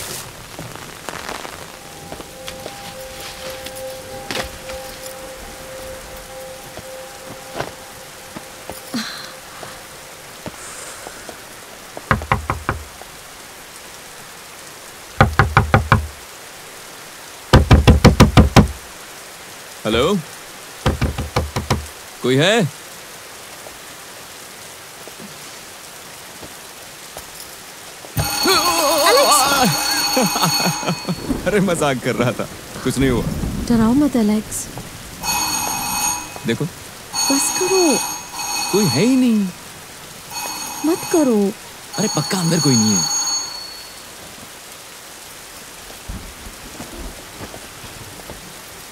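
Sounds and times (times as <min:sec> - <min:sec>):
steady rain: 0:00.0 - 0:48.9
knocking on wooden door: 0:12.1 - 0:12.9, 0:15.2 - 0:16.2, 0:17.5 - 0:18.8, 0:20.9 - 0:21.9
person calling: 0:28.2 - 0:31.4, 0:35.2 - 0:39.6, 0:40.3 - 0:43.6
telephone ringing: 0:28.2 - 0:31.4, 0:35.2 - 0:39.6, 0:40.3 - 0:44.0.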